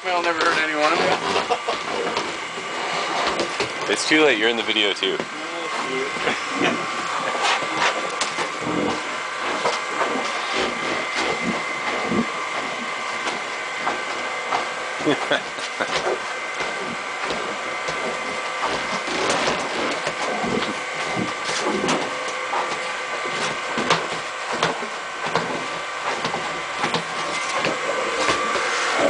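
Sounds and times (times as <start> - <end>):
machine whining: 0.0 - 29.0.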